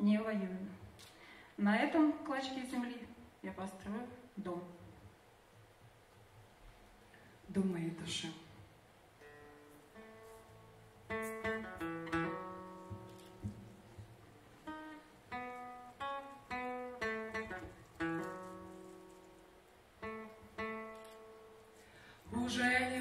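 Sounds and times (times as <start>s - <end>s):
acoustic guitar playing: 9.2s - 23.0s.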